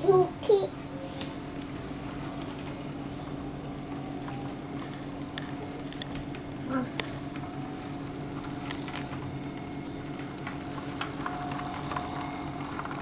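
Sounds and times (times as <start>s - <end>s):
toy train motor hum: 10.6s - 13.0s.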